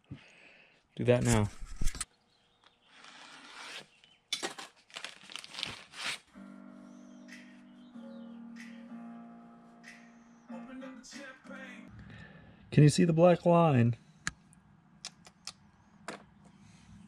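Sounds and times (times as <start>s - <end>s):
rustling and scraping handling noises: 1.1s - 2.1s, 2.9s - 6.3s
soft background music chords: 6.3s - 12.4s.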